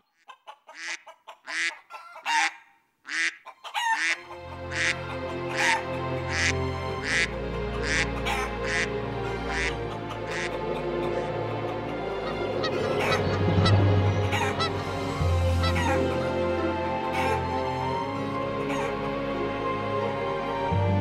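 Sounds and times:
waterfowl honking calls: 0.0 - 19.6
low sustained music: 4.2 - 21.0.

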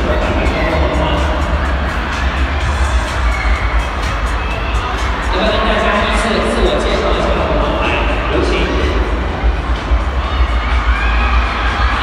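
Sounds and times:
crowd noise: 0.0 - 12.0
loud music with heavy bass: 0.0 - 12.0.

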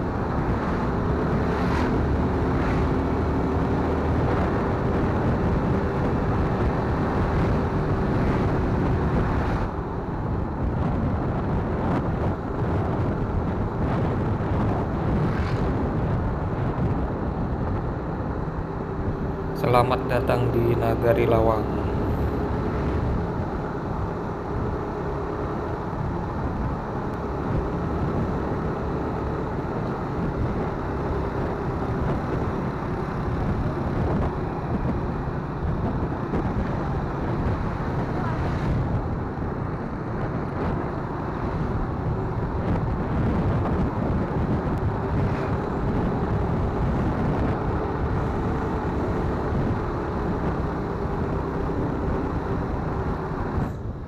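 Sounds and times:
wind noise on microphone: 0.0 - 54.0.

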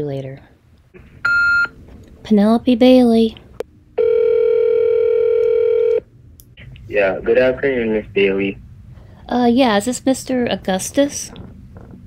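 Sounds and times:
telephone ringback tone: 4.0 - 6.0.

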